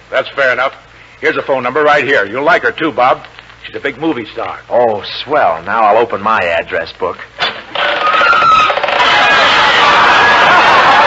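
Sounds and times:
audience laughing: 0:09.0 - 0:11.0.

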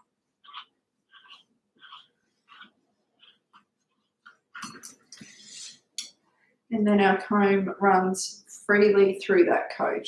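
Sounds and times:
brush scratching through coat: 0:00.0 - 0:04.6.

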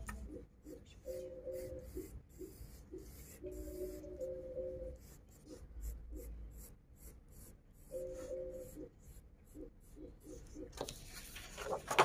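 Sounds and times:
pencil scratching on paper: 0:00.2 - 0:10.8.

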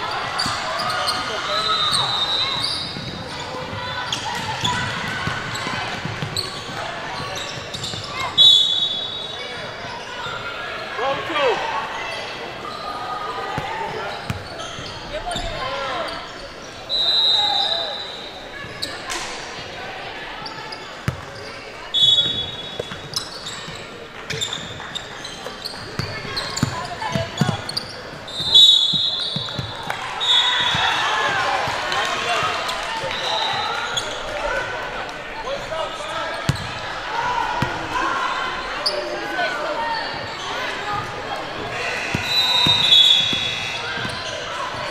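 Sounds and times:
sneakers squeaking on court floor: 0:00.0 - 0:19.7, 0:20.3 - 0:34.4, 0:35.5 - 0:37.0, 0:37.6 - 0:44.9
crowd chatter in gym: 0:00.0 - 0:44.9
hubbub of voices: 0:00.0 - 0:44.9
referee's whistle blasts: 0:01.5 - 0:03.0, 0:08.1 - 0:09.4, 0:16.9 - 0:18.4, 0:21.9 - 0:22.9, 0:28.3 - 0:31.0, 0:33.1 - 0:33.9, 0:42.1 - 0:44.1
basketball bouncing: 0:36.5 - 0:36.7.

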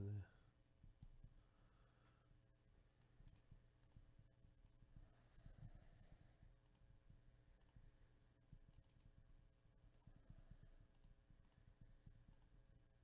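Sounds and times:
computer mouse clicks: 0:00.9 - 0:01.2, 0:02.9 - 0:04.2, 0:06.5 - 0:12.7.

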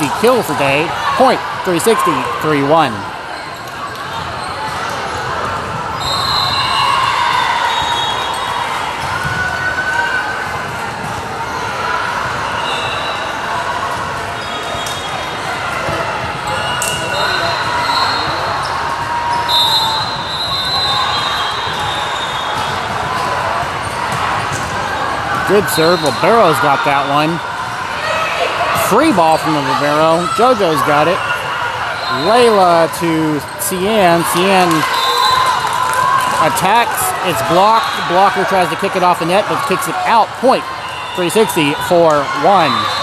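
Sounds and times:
hubbub of voices: 0:00.0 - 0:43.0.

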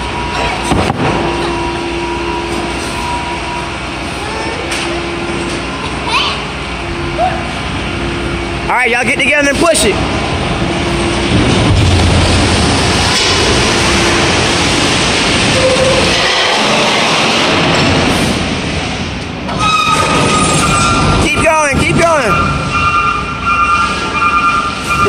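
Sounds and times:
steady high squeal: 0:19.5 - 0:25.0.

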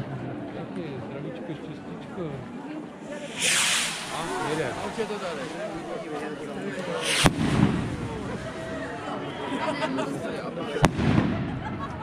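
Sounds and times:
people chatting: 0:00.0 - 0:12.0
firework rocket hissing: 0:03.0 - 0:09.1.

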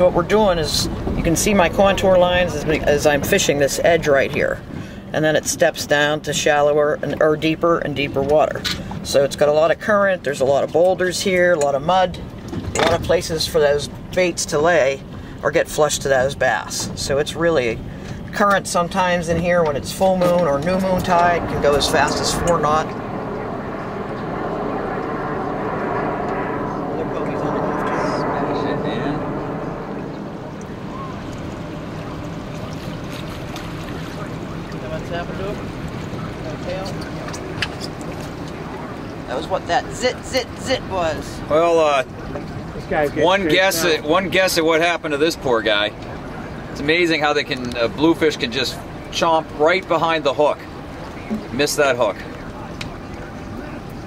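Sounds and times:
wind noise on microphone: 0:00.0 - 0:05.1
boat motor humming: 0:00.0 - 0:54.0.

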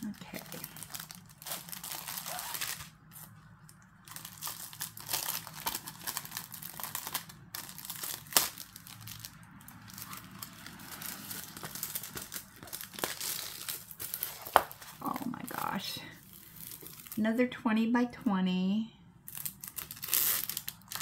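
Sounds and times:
plastic packaging crinkling: 0:00.0 - 0:17.3, 0:19.2 - 0:21.0.

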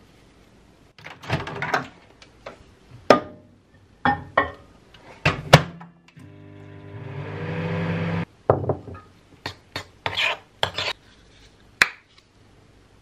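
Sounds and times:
microwave humming: 0:06.2 - 0:08.2.

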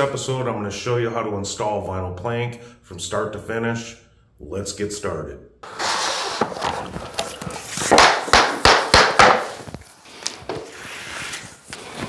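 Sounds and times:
rustling handling noise: 0:05.7 - 0:08.0
rubber mallet knocking flooring: 0:07.8 - 0:09.7.

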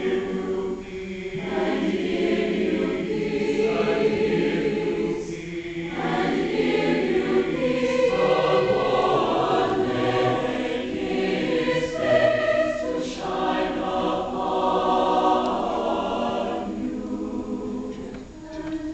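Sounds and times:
choir singing sustained chords: 0:00.0 - 0:18.9.

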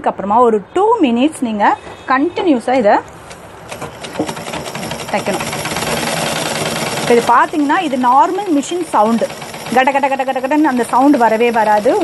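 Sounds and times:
sewing machine clattering: 0:03.7 - 0:12.0.

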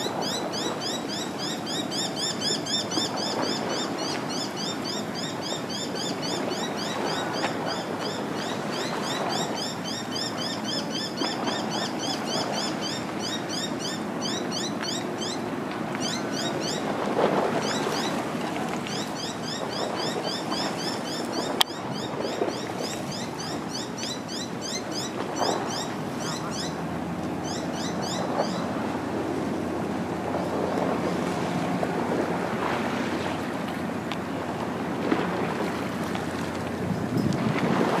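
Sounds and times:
water lapping against stone wall: 0:00.0 - 0:38.0
wind on microphone: 0:34.7 - 0:38.0.

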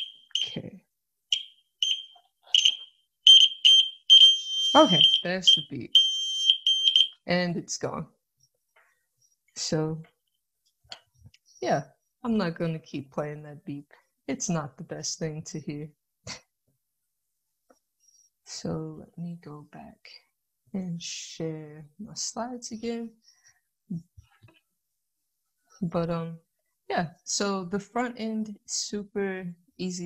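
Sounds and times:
buzzer beeping: 0:00.0 - 0:00.6, 0:01.3 - 0:07.1.

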